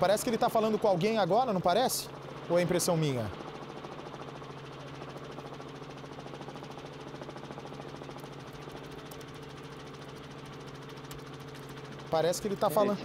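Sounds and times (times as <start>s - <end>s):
helicopter engine and rotor drone: 0.0s - 13.0s.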